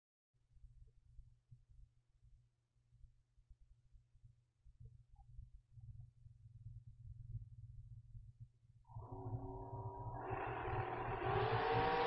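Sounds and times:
dragster engines accelerating: 0:08.9 - 0:12.0.

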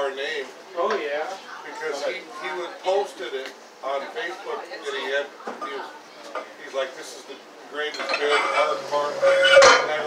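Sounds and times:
weight plates clanking on barbell: 0:07.9 - 0:10.0.

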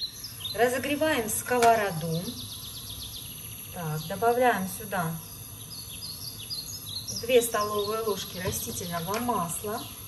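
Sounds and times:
bird chirping: 0:00.0 - 0:10.0
low background noise: 0:00.0 - 0:10.0.

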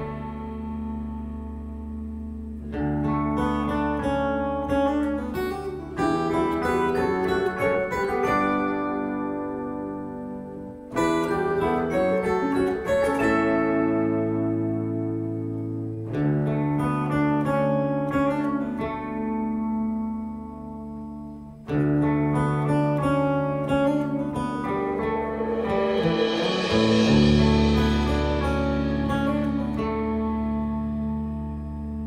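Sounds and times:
strummed acoustic guitar: 0:00.0 - 0:32.0.

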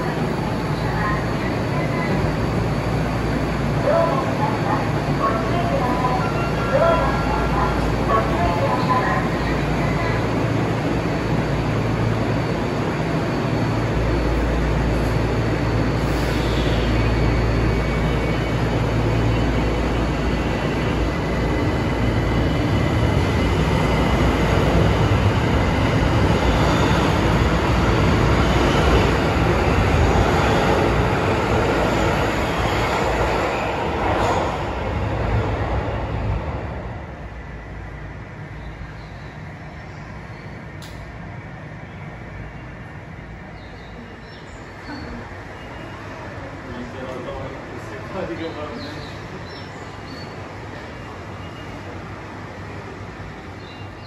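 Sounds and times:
train rumbling past platform: 0:00.0 - 0:54.0.

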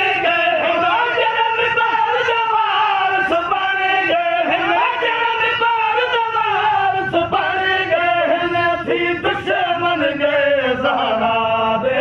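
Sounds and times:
man singing chant-like: 0:00.0 - 0:12.0.

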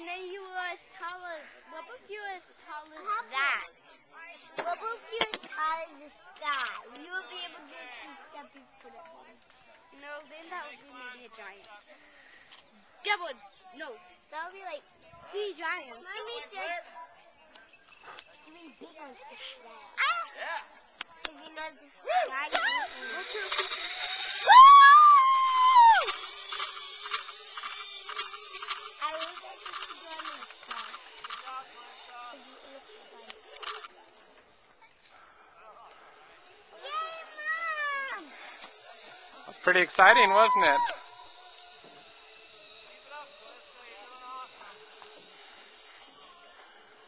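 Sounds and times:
person screaming excitedly: 0:24.4 - 0:26.1, 0:40.3 - 0:41.0
faint clicks and ticks: 0:25.5 - 0:34.5.

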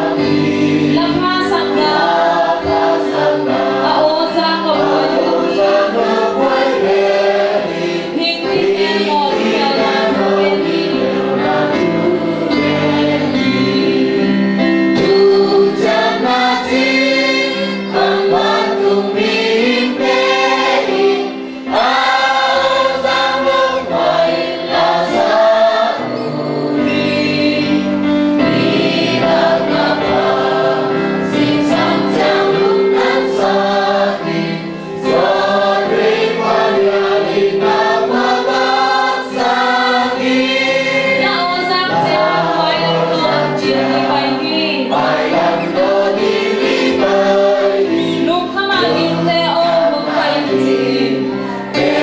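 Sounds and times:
congregation singing a hymn: 0:00.0 - 0:52.0.

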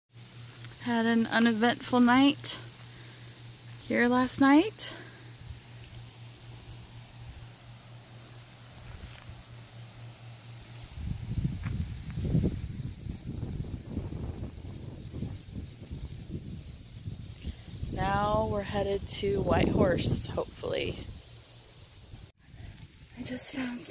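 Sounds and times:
wind gusting on microphone: 0:10.8 - 0:21.3.

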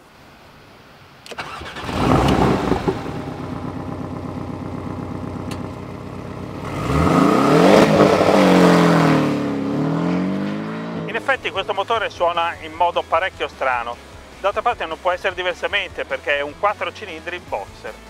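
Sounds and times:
car engine starting: 0:01.2 - 0:17.8
car engine revving: 0:01.3 - 0:15.6
car engine idling: 0:01.3 - 0:17.4.

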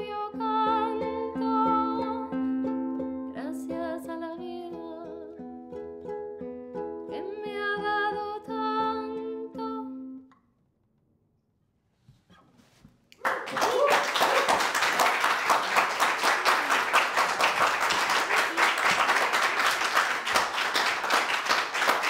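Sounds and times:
audience applauding: 0:13.2 - 0:22.0.

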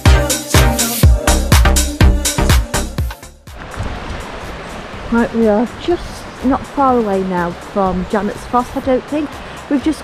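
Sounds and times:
background music with a beat: 0:00.0 - 0:04.7
stream rushing over rocks: 0:03.5 - 0:10.0.

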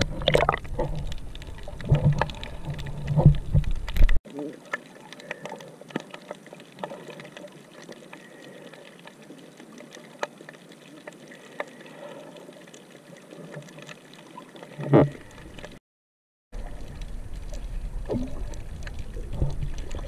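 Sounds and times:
sharp clicks and crackles: 0:00.0 - 0:15.8, 0:16.6 - 0:20.0.

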